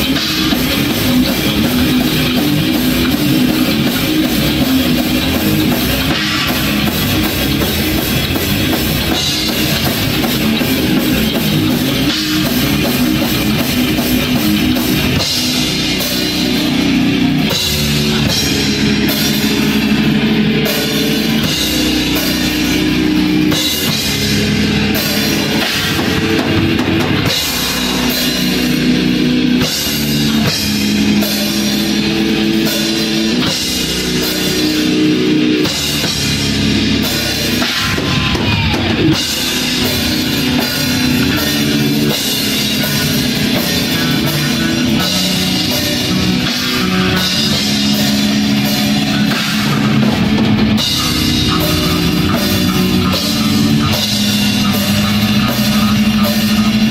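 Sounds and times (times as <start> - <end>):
death metal band playing live: 0.0 - 56.9.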